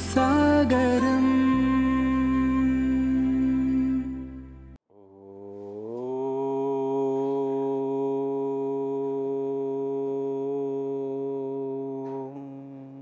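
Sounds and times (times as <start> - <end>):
man chanting held note: 5.0 - 13.0.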